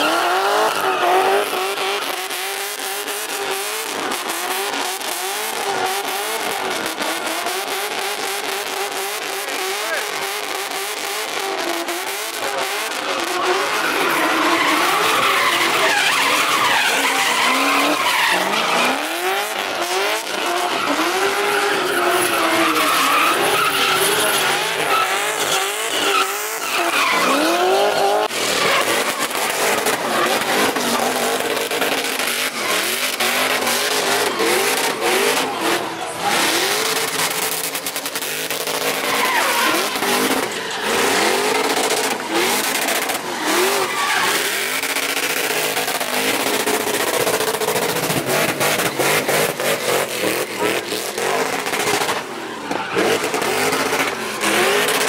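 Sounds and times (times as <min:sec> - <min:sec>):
car engine revving: 0:00.0 - 0:55.0
tyres squealing on asphalt: 0:00.0 - 0:55.0.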